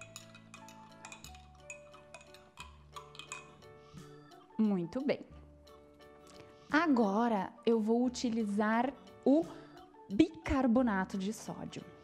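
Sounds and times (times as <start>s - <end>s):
spoon clicking against glass: 0.0s - 3.7s
soft background music: 0.0s - 12.0s.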